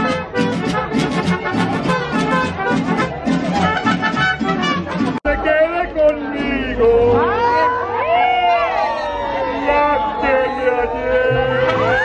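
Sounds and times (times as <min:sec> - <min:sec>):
mariachi music: 0:00.0 - 0:12.0.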